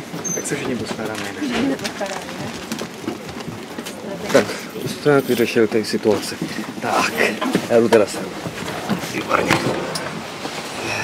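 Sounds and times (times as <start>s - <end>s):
murmur of voices: 0.0s - 10.0s
train coach background noise: 0.0s - 11.0s.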